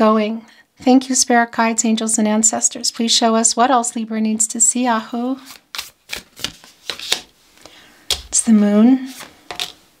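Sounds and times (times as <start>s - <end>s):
cards being shuffled: 5.4s - 8.5s, 9.1s - 9.8s.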